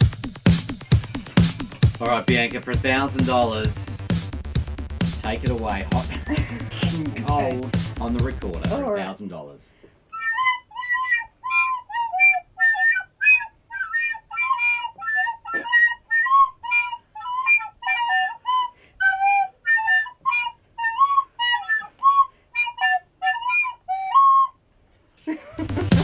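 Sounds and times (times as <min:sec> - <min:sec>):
plastic recorder playing a tune: 0:05.2 - 0:09.1, 0:10.1 - 0:24.6.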